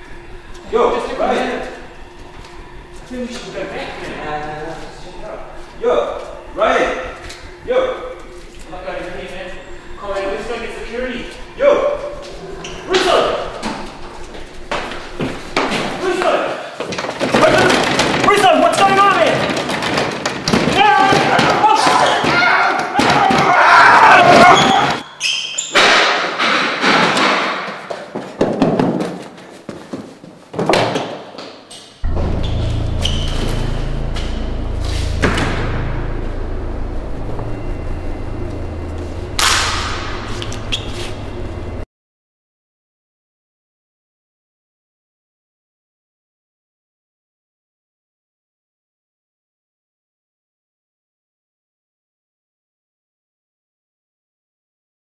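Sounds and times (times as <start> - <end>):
low steady drone: 0.0 - 16.0, 32.0 - 41.9
heavy thuds and bangs: 32.0 - 41.8.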